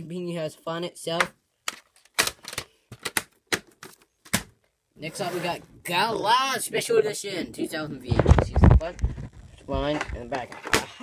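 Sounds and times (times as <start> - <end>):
plastic tape cases clacking: 1.6 - 4.5.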